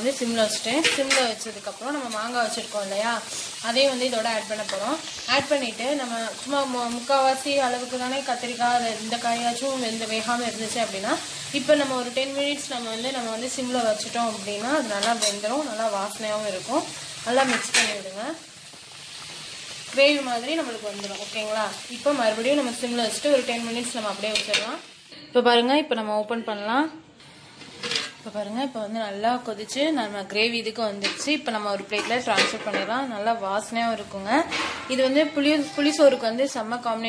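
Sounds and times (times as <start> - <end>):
ladle scraping a pot: 27.2 - 28.2.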